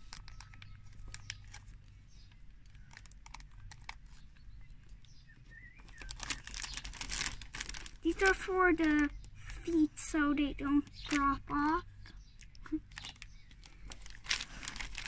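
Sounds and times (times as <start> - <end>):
plastic bag crinkling: 0.0 - 9.8, 12.4 - 15.0.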